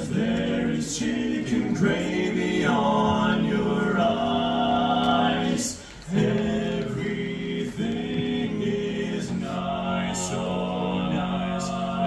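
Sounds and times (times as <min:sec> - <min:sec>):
men singing in harmony: 0:00.0 - 0:12.0.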